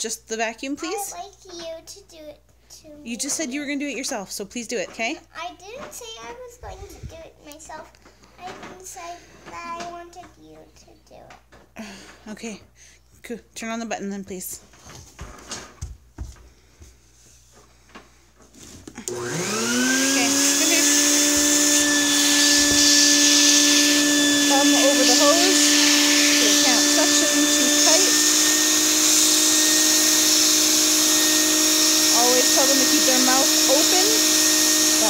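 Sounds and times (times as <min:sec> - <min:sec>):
shop vac motor running: 0:18.6 - 0:35.0.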